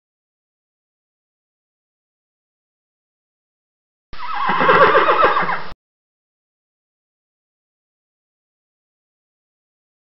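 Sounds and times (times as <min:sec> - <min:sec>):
horse whinnying: 0:04.2 - 0:05.8.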